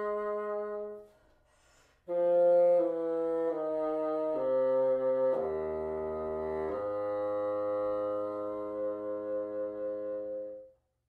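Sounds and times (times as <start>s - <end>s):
bassoon playing sustained notes: 0.0s - 1.0s, 2.1s - 10.7s.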